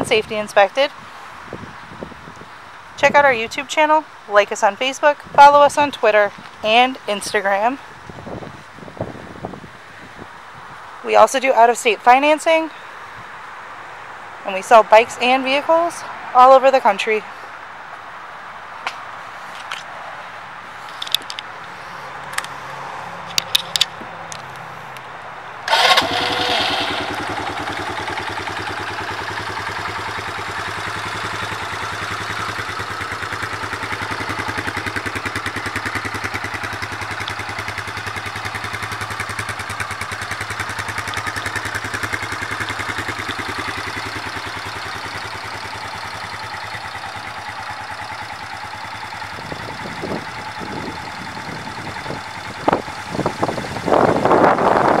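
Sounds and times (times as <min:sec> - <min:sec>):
atv engine starting and idling: 0:25.7 - 0:55.0.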